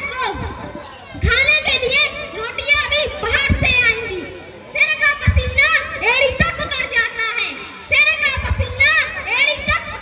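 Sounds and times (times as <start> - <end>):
child speaking loudly: 0.0 - 10.0.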